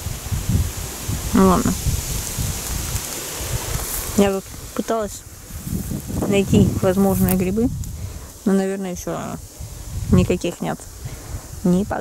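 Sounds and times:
outdoor hiss: 0.0s - 12.0s
wind thumps on microphone: 0.0s - 12.0s.

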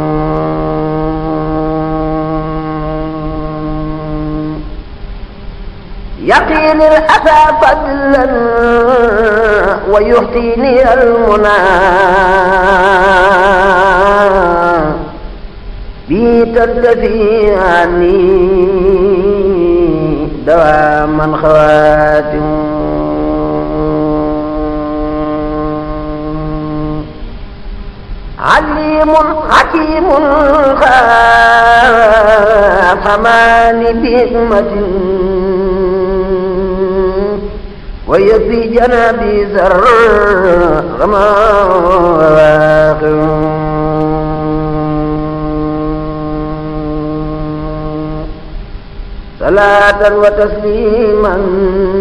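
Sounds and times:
chanting voices droning: 0.0s - 52.0s.

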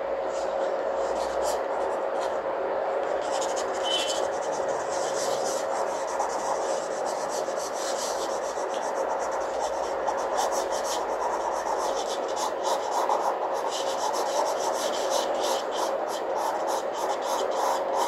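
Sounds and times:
faint steady hum: 0.0s - 18.0s
pen scratching on paper: 0.4s - 2.4s, 3.0s - 18.0s.

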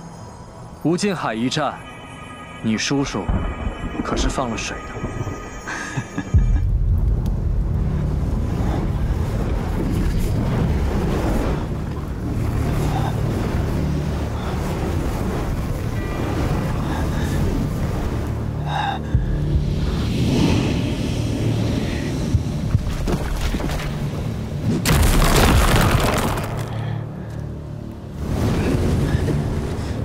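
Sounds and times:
film music: 0.0s - 30.0s.

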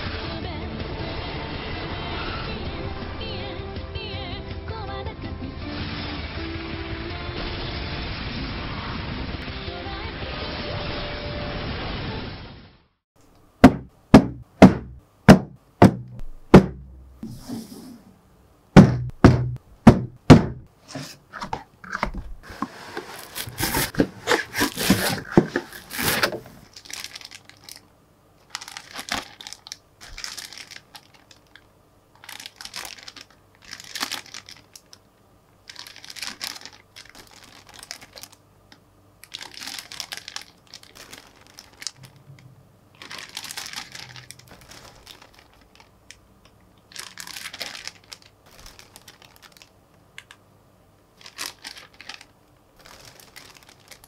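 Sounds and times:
plastic bags crinkling: 20.9s - 35.0s, 35.6s - 38.4s, 39.2s - 50.4s, 51.2s - 54.0s.

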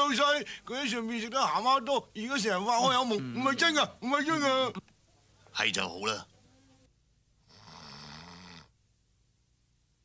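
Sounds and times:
person snoring: 7.4s - 8.7s.

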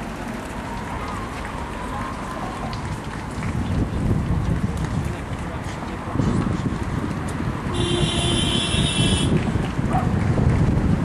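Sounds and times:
footsteps of many runners: 0.0s - 11.0s.

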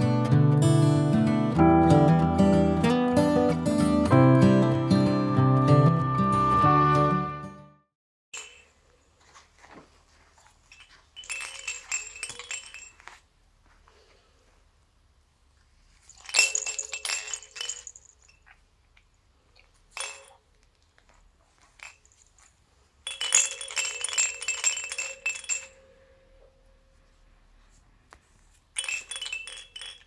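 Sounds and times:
toy rattle jingling: 8.4s - 8.8s, 10.6s - 13.1s, 16.0s - 18.5s, 19.9s - 20.4s, 21.7s - 25.9s, 28.8s - 30.0s.

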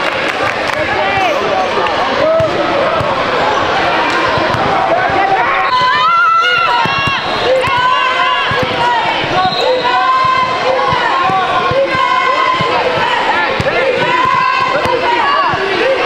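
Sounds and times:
voices of people: 0.0s - 16.0s.

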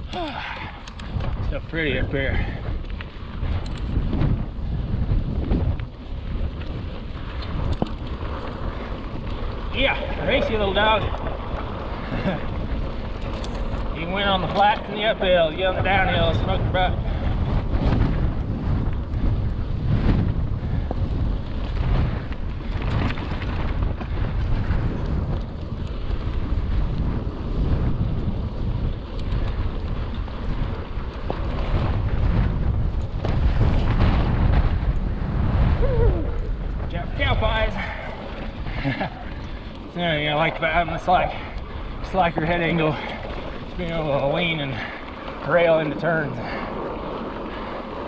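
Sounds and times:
tyres rumbling on dirt trail: 0.0s - 48.0s
wind buffeting microphone: 0.0s - 48.0s.

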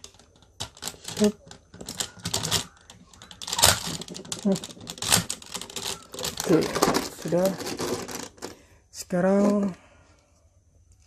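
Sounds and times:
plastic toy parts clicking: 0.0s - 8.6s.

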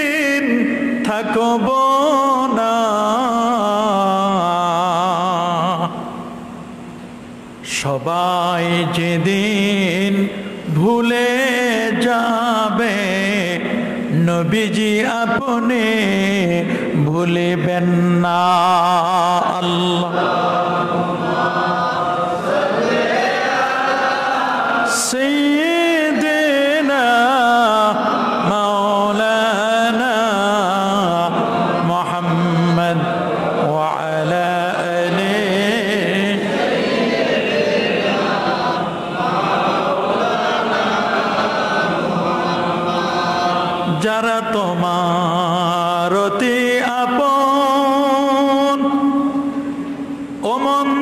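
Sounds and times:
man chanting into a microphone: 0.0s - 6.2s, 7.6s - 21.1s, 24.8s - 36.7s, 41.4s - 49.8s, 50.4s - 51.0s.

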